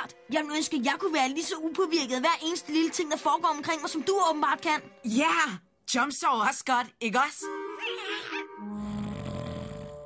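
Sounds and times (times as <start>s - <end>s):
soft background music: 0.0s - 10.0s
low rough creature growl: 8.7s - 10.0s.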